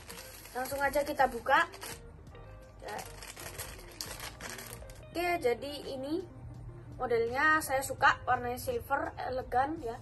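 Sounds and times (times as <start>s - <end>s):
plastic wrapping crinkling: 0.0s - 2.0s, 2.8s - 5.1s.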